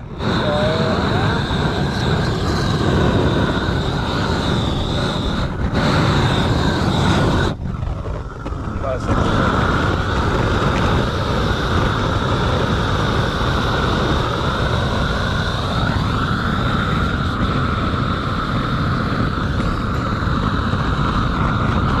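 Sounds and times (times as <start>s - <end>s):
gas torch burning: 0.0s - 22.0s.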